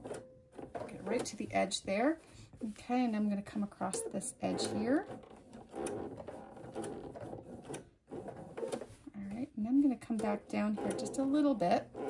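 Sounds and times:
sewing machine stitching: 3.5s - 9.0s, 10.0s - 12.0s.

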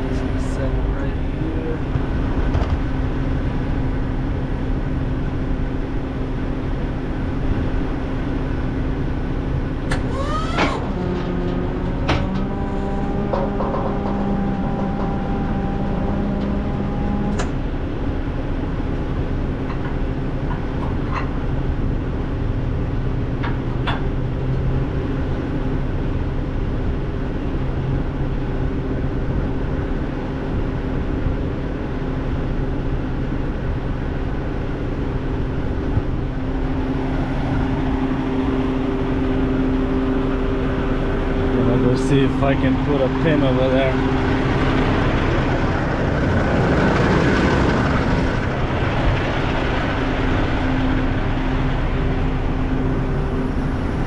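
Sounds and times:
engine idling: 0.0s - 54.0s
higher tone: 9.9s - 17.7s, 36.2s - 46.4s.

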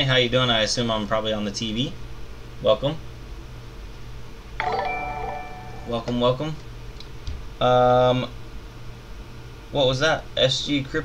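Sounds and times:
bell-like alert chime: 4.6s - 6.2s.

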